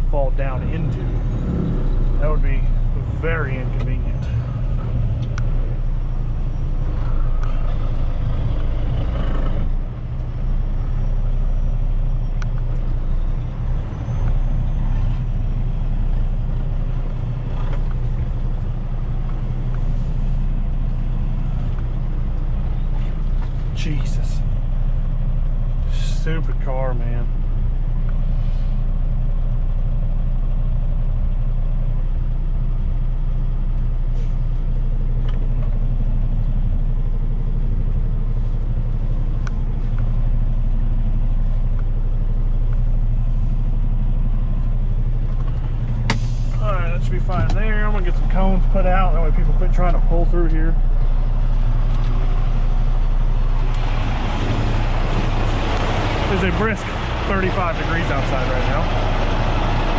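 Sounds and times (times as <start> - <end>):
truck diesel engine idling: 0.0 - 59.9.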